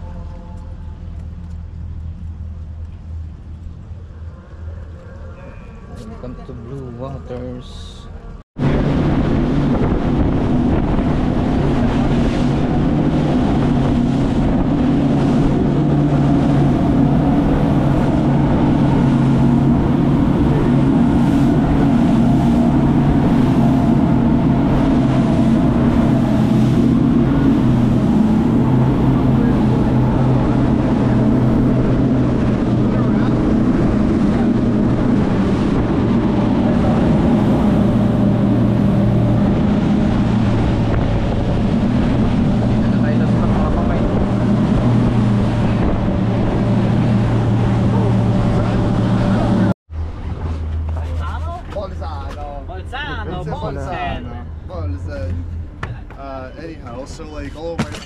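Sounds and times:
rushing wind: 0.0s - 51.6s
motorboat engines droning: 0.0s - 58.0s
water rushing past hull: 7.0s - 58.0s.

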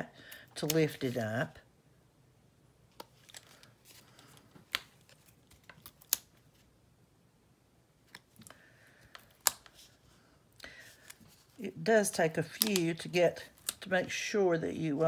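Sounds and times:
faint rustling of paper: 2.9s - 6.8s, 8.0s - 15.0s.

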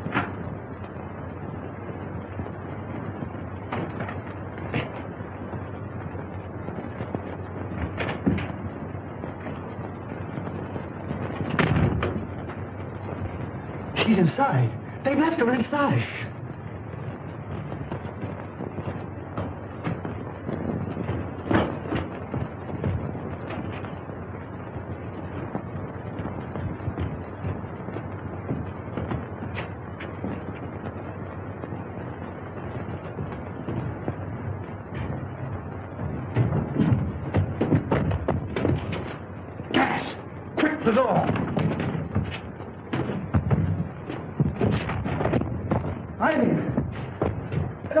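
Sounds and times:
film soundtrack hiss and crackle: 0.0s - 48.0s
heavy thumps: 0.0s - 48.0s.

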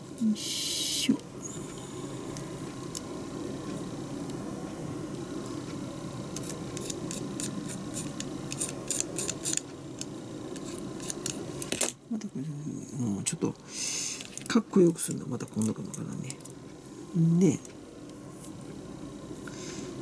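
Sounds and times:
low background hum: 0.0s - 20.0s.

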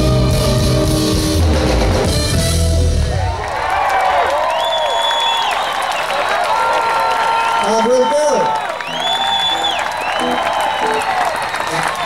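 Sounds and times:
jazz band playing: 0.0s - 3.4s, 10.1s - 12.0s
crowd cheering and whistling: 2.7s - 12.0s
crowd applauding: 3.1s - 12.0s.

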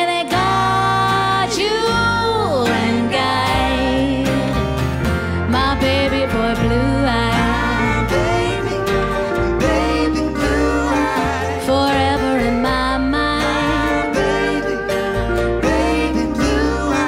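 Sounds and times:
woman singing: 0.0s - 4.8s, 5.4s - 15.0s
acoustic guitar: 0.0s - 17.0s
keyboards: 0.0s - 17.0s
upright bass: 0.0s - 17.0s.

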